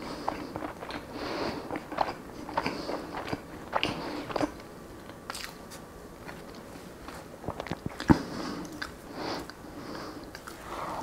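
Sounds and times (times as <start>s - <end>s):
chewing with wet mouth clicks: 0.2s - 5.6s, 7.5s - 9.6s, 10.2s - 10.6s.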